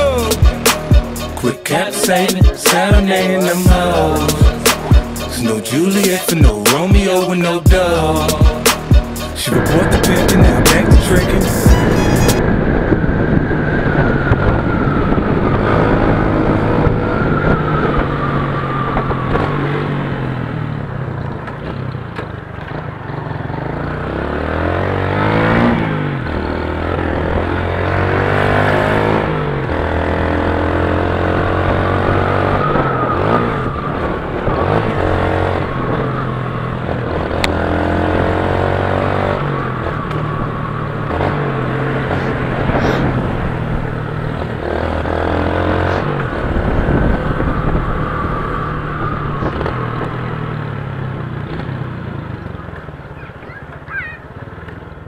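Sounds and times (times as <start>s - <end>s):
motorcycle engine accelerating: 0.0s - 55.0s.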